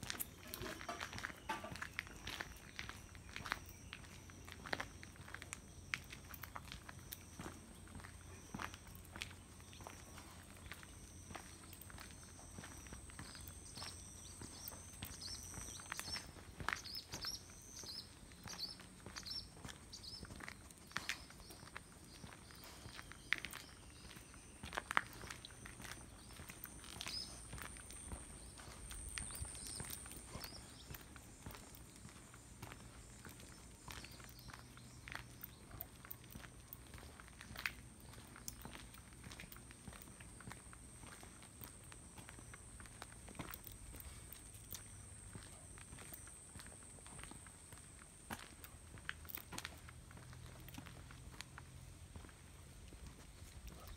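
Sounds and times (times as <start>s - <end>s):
footsteps on paved path: 0.0s - 53.9s.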